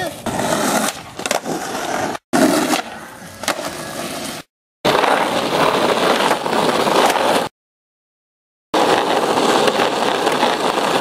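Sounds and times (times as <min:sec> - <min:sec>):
skateboard wheels rolling on asphalt: 0:00.0 - 0:07.5, 0:08.8 - 0:11.0.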